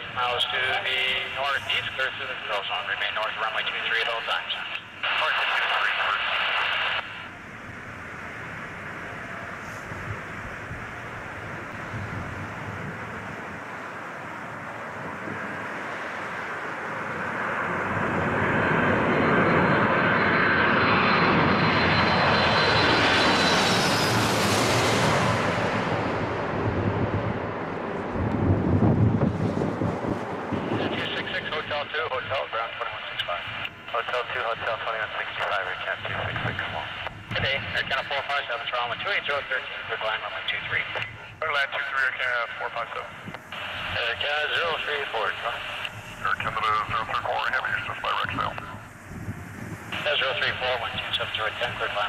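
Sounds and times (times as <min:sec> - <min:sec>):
jet passing overhead: 0:00.0 - 0:52.0.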